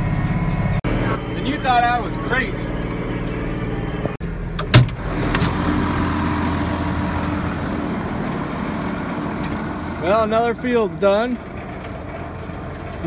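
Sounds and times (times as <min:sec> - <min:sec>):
tractor diesel engine running: 0:00.0 - 0:13.0.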